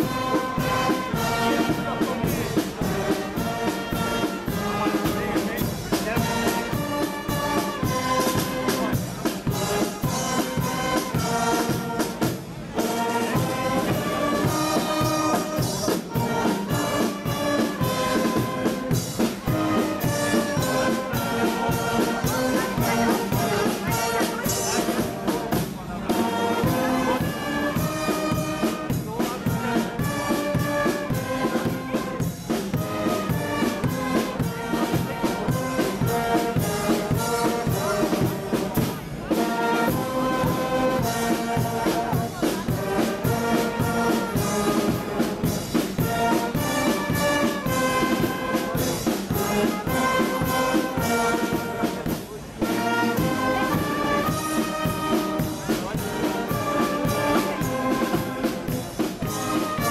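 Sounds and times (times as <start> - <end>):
brass band playing a march: 0.0 - 59.9.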